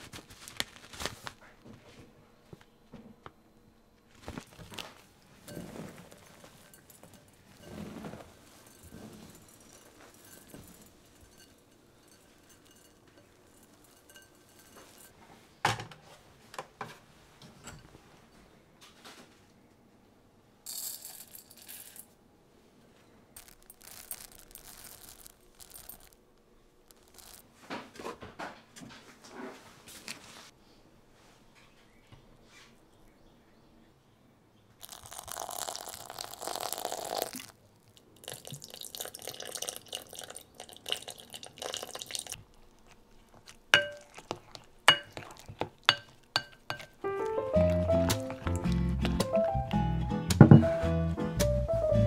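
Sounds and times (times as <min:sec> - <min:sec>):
rice grains rattling into glass bowl: 0:23.4 - 0:26.2, 0:26.9 - 0:27.4, 0:34.8 - 0:37.5
sauce trickling onto rice: 0:23.4 - 0:26.2, 0:26.9 - 0:27.4, 0:34.8 - 0:48.8.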